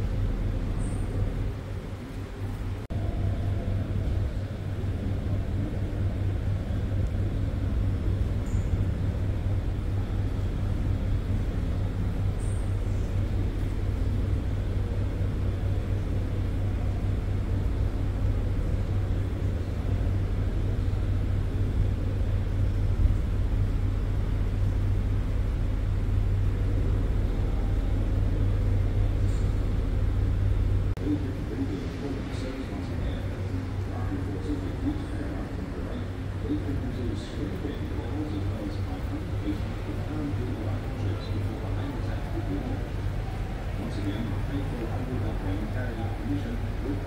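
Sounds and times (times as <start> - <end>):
low rumble: 0.0 - 47.0.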